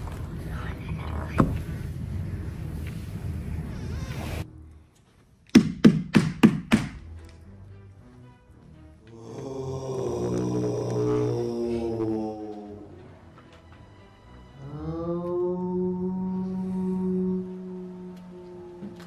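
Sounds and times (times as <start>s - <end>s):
low eerie background music: 0.0s - 5.5s, 6.5s - 19.0s.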